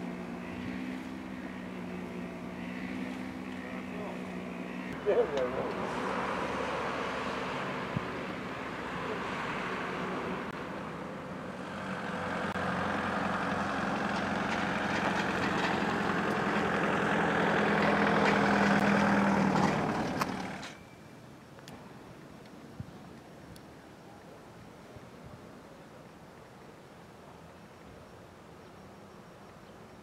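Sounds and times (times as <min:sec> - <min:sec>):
heavy vehicle engine running: 0:00.0 - 0:20.8.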